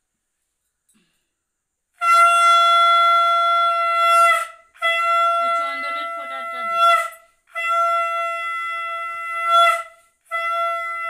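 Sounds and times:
conch shell blown: 1.9s - 11.0s.

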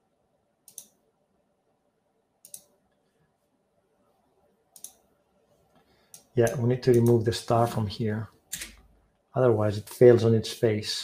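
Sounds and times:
computer mouse clicks: 0.7s - 1.0s, 2.4s - 2.8s, 4.8s - 5.1s, 5.7s - 7.2s.

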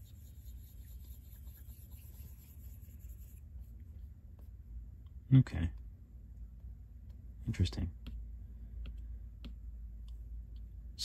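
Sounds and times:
stylus rubbing on glass screen: 0.0s - 4.1s
low steady hum: 0.0s - 11.0s.

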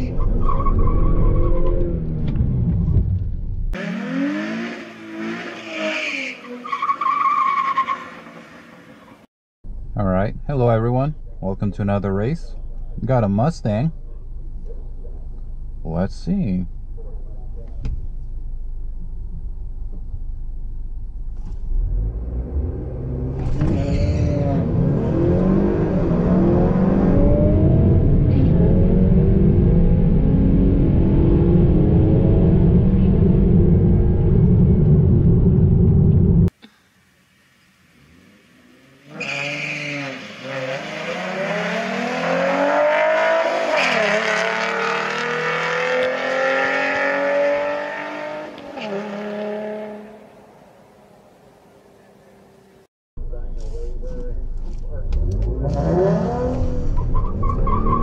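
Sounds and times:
road rumble: 0.0s - 4.0s, 4.8s - 58.0s
cars launching and accelerating: 3.7s - 9.2s, 21.4s - 36.5s, 37.9s - 52.0s, 54.9s - 58.0s
car engine accelerating hard: 40.0s - 50.2s, 53.7s - 58.0s.

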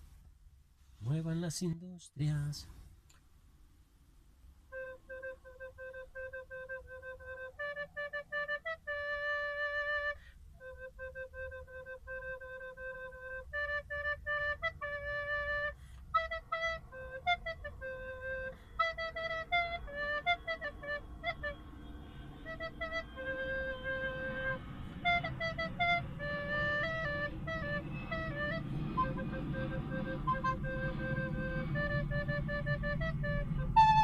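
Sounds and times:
low steady rumble: 0.0s - 34.0s.

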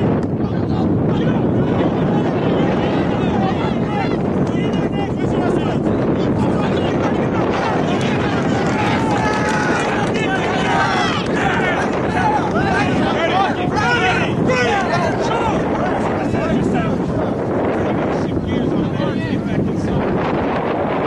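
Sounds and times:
wind buffeting microphone: 0.0s - 21.0s
crowd shouting and cheering: 0.2s - 19.6s.

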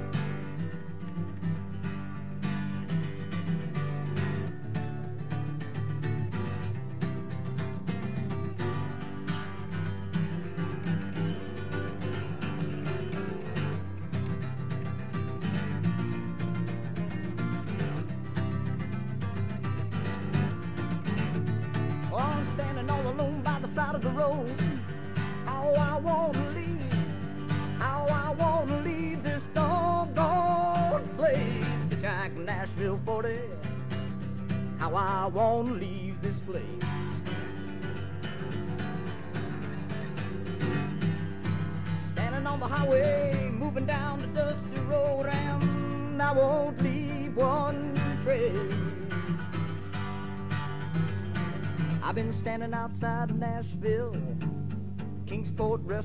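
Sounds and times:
acoustic guitar strumming: 0.0s - 56.0s
bending lead guitar melody: 0.0s - 56.0s.

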